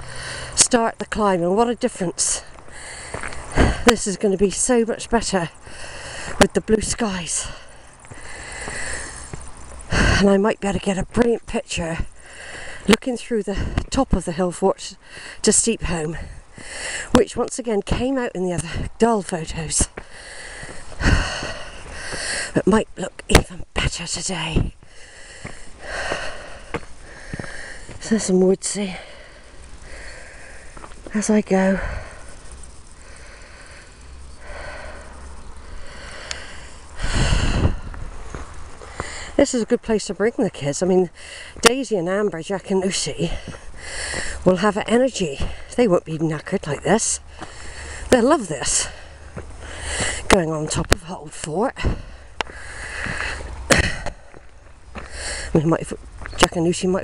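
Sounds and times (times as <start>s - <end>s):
person breathing heavily: 0.0s - 0.6s, 2.4s - 4.2s, 5.5s - 6.5s, 7.2s - 10.4s, 11.9s - 14.0s, 15.0s - 15.5s, 16.1s - 17.2s, 19.9s - 22.6s, 24.7s - 39.4s, 41.0s - 41.7s, 43.2s - 44.5s, 45.2s - 45.8s, 47.2s - 50.4s, 51.7s - 55.6s
footsteps on path: 0.0s - 23.6s, 24.2s - 57.0s.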